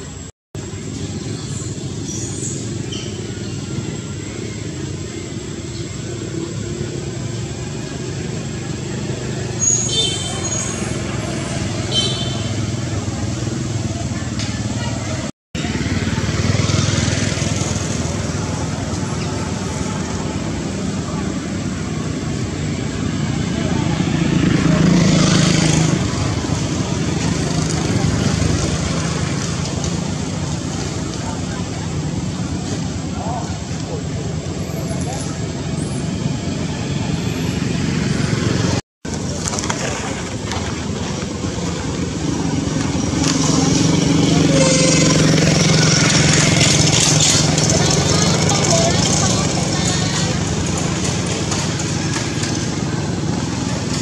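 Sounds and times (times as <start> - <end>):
motorbikes: 0.0 - 54.0
road traffic: 0.0 - 54.0
indistinct voices: 1.0 - 54.0.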